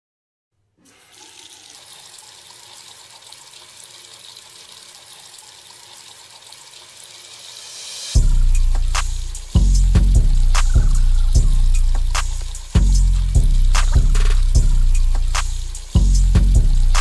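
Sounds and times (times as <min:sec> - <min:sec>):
tap water running into sink: 0:00.8 - 0:08.2, 0:10.6 - 0:17.0.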